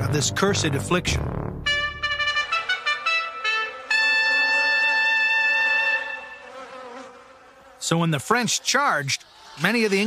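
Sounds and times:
held brass note: 1.6s - 6.6s.

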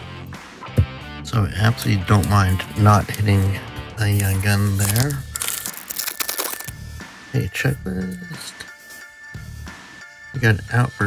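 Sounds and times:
foil card pack tearing and crinkling: 1.8s - 6.7s.

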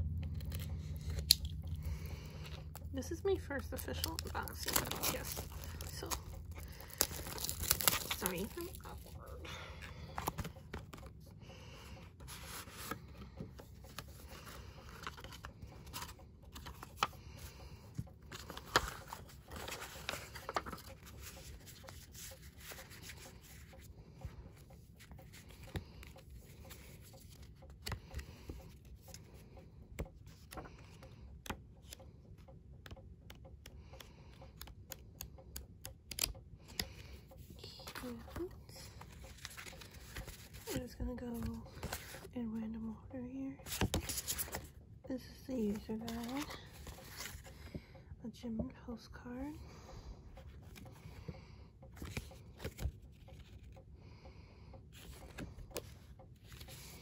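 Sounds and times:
paper and card rustling: 0.2s - 29.4s, 36.1s - 42.3s, 43.6s - 44.7s, 45.6s - 47.8s, 52.0s - 53.7s, 54.9s - 57.0s.

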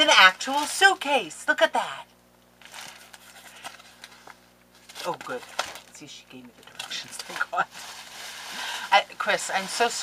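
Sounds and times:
low electrical hum: 0.0s - 10.0s
package rustling and clicking: 2.6s - 6.0s.

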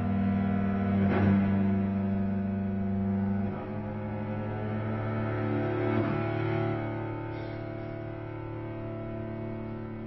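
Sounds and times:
cello bowing low notes: 0.0s - 10.0s.

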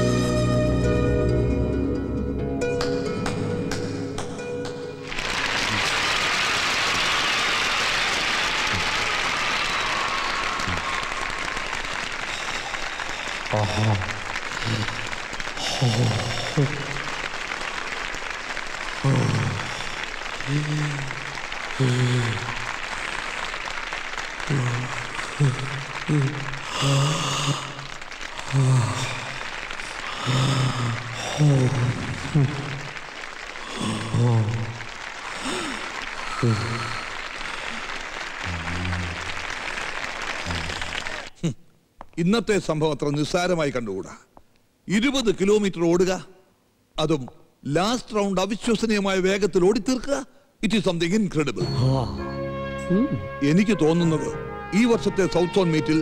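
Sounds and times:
crowd cheering and clapping: 3.2s - 41.4s
man gasping for breath: 21.8s - 22.7s, 28.5s - 32.8s, 35.3s - 37.9s.

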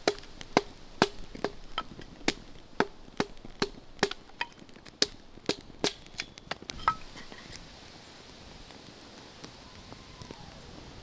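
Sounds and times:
dry grass fire crackling: 0.0s - 11.0s
sharp snaps of fire: 0.0s - 11.0s.

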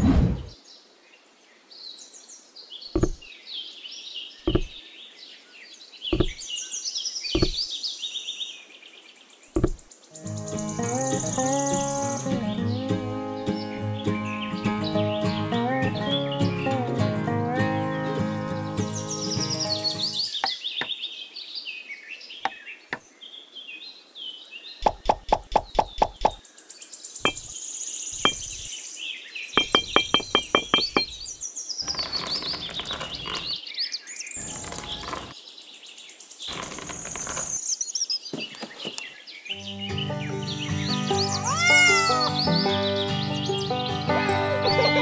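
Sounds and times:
birds chirping: 1.9s - 16.8s, 18.1s - 21.4s, 24.3s - 45.0s
background music: 10.2s - 20.2s, 39.6s - 45.0s
rustling of bricks and pebbles: 29.6s - 33.6s, 34.4s - 35.4s, 36.4s - 37.8s.

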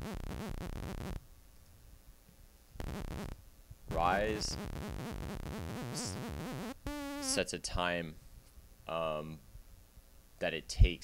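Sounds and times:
chopped synthesizer sawtooth note: 2.8s - 7.4s.

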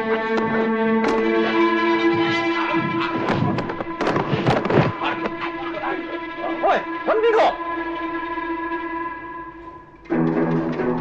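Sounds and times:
bodies thudding onto mat: 0.3s - 5.4s.

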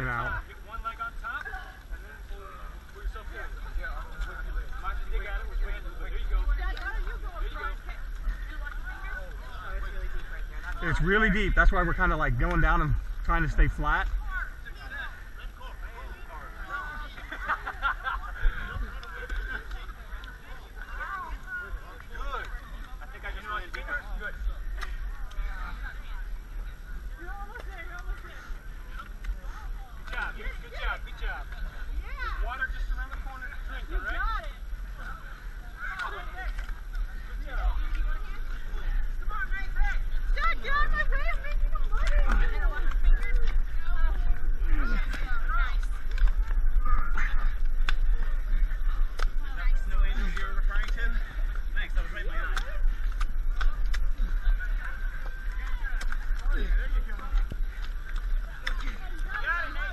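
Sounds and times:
people talking and calling out: 0.0s - 59.9s
steady low rumble: 0.0s - 59.9s.

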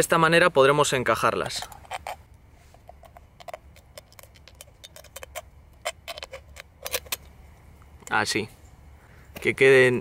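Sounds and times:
aluminium cans clicking and crinkling: 1.4s - 7.3s.

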